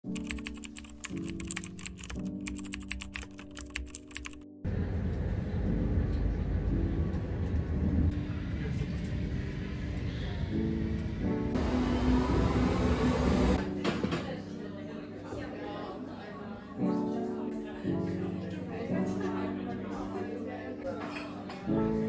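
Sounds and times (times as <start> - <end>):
sharp keyboard-like clicks: 0.1 - 4.4
lo-fi music: 0.1 - 15.1.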